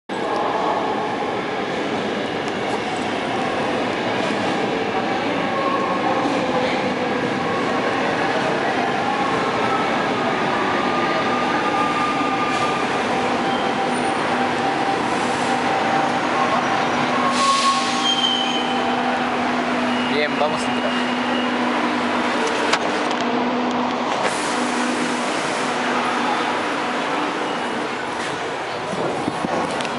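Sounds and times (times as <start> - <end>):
electric train braking with whine: 11.2 - 21.8.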